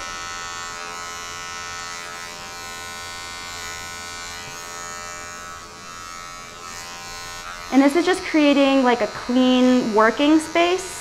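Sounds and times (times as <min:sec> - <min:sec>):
electric hair clipper buzzing: 0:00.0 - 0:11.0.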